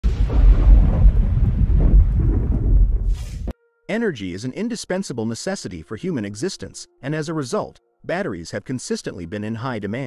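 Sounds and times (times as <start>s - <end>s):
deep rolling thunder: 0.0s - 3.5s.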